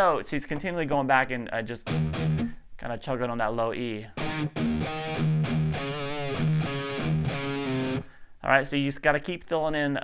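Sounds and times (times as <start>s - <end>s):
electric guitar rock riff: 1.8s - 2.6s, 4.2s - 8.2s.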